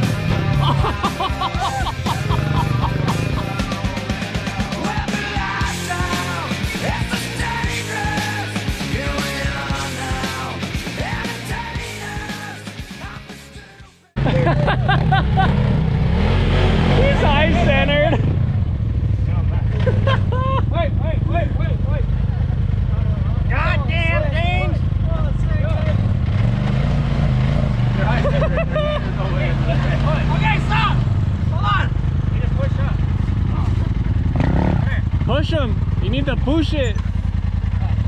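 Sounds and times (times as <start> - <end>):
off-road vehicle engine running: 0.0 - 13.6, 14.2 - 38.0
people calling out: 0.5 - 8.5.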